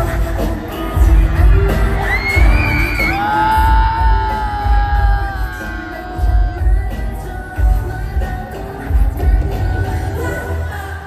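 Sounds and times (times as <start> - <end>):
pop backing track with bass beat: 0.0 - 11.0.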